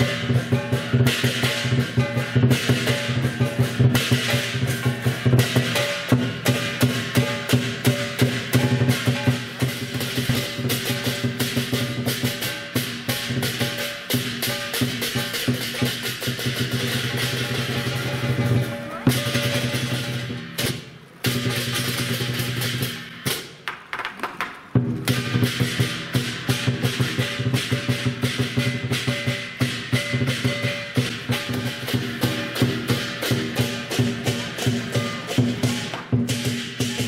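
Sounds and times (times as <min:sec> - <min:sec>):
cymbals crashing: 0:00.0 - 0:23.6, 0:24.7 - 0:37.0
drum beaten in fast strokes: 0:00.0 - 0:23.6, 0:24.7 - 0:37.0.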